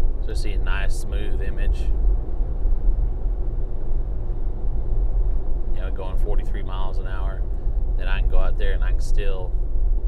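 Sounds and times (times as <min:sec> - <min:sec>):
engine and tyre rumble in car cabin: 0:00.0 - 0:10.0.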